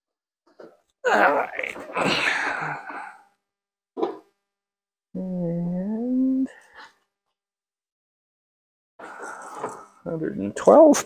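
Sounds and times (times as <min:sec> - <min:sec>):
man humming: 0:05.2 - 0:06.6.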